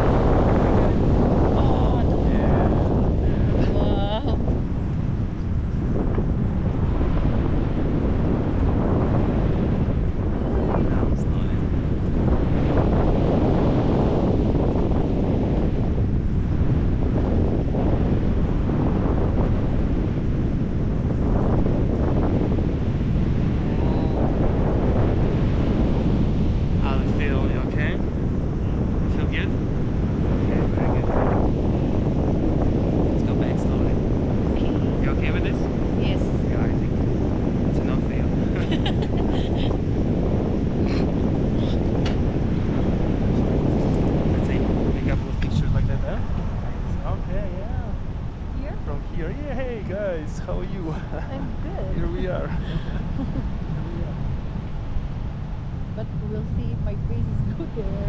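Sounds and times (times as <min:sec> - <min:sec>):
wind rushing over microphone: 0:00.0 - 0:58.0.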